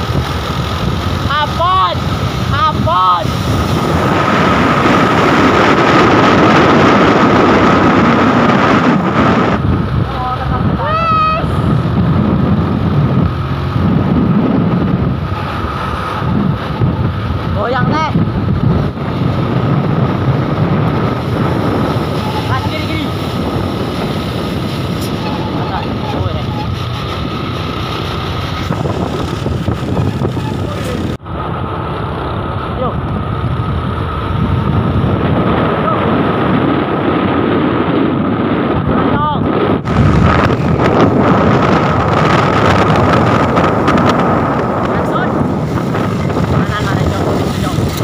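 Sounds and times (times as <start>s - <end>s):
moving traffic: 0.0s - 48.0s
truck engine: 0.0s - 48.0s
wind buffeting microphone: 0.0s - 48.0s.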